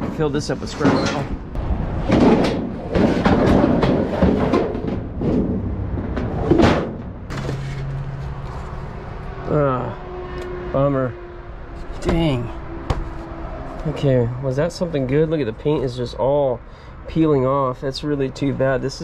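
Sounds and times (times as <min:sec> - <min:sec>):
junk clattering and scraping: 0:00.0 - 0:09.0.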